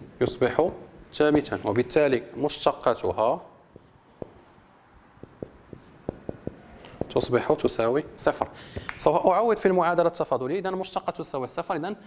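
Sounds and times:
marker ticking on whiteboard: 5.2s - 7.4s.

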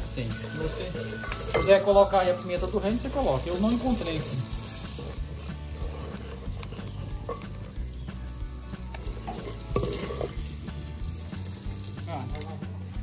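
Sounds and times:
vegetables sizzling in a pot: 0.0s - 13.0s.

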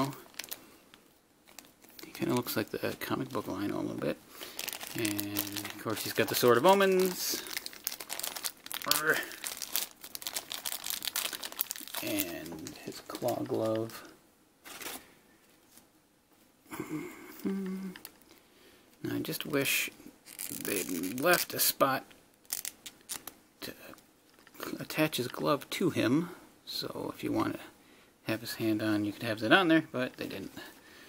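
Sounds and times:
plastic bag crinkling: 0.0s - 3.8s, 4.4s - 15.1s, 20.2s - 21.7s, 22.4s - 23.3s.

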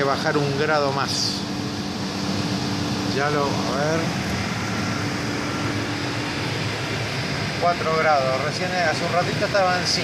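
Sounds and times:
refrigeration compressor humming: 0.0s - 10.0s.

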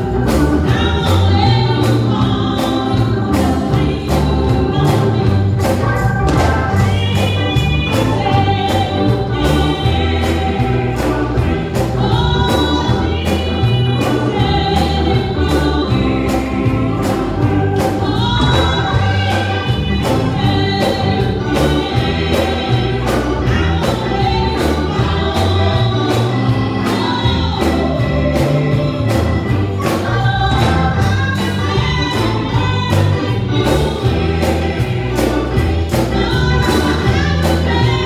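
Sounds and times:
choir singing gospel: 0.0s - 38.0s
instrumental backing with heavy bass: 0.0s - 38.0s.

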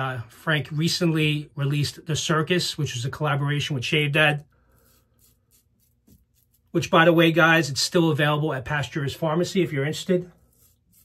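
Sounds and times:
razor scraping stubble: 4.7s - 7.1s, 9.9s - 11.0s
man speaking: 6.8s - 10.3s.

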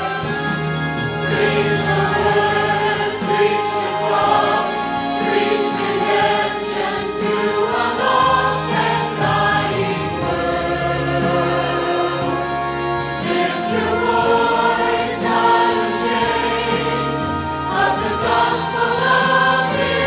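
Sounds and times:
choir singing held chords: 0.0s - 20.0s.

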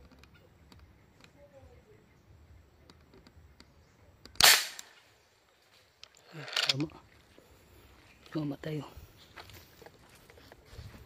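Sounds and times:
marble gun shot: 4.3s - 5.0s.

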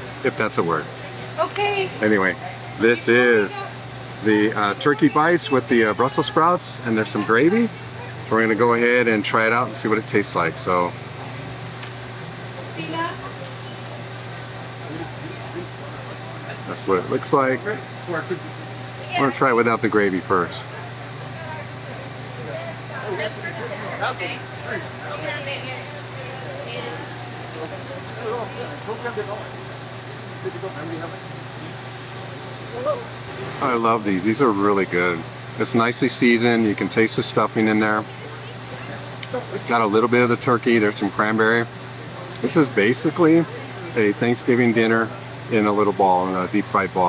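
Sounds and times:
faint voices talking: 0.0s - 47.0s
low machine hum: 0.0s - 47.0s.

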